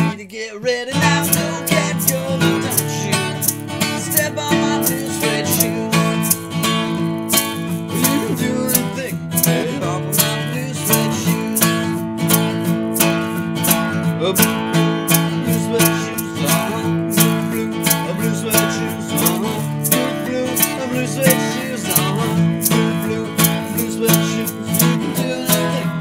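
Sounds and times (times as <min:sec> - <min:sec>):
acoustic guitar strumming: 0:00.0 - 0:26.0.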